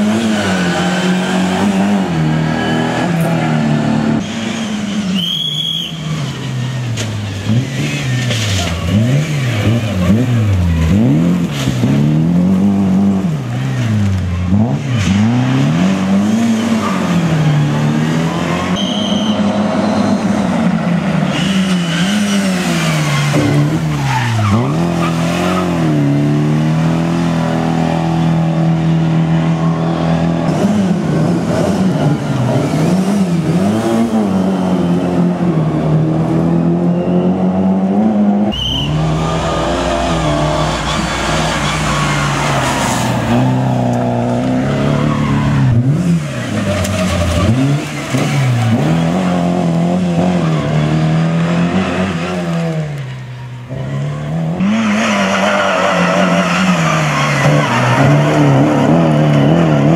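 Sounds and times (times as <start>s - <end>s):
rally car engine revving: 0.0s - 59.9s.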